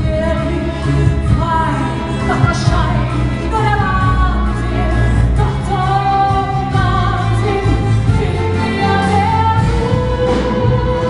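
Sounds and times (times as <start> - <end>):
orchestra accompanying: 0.0 - 11.0
woman singing ballad: 0.0 - 11.0.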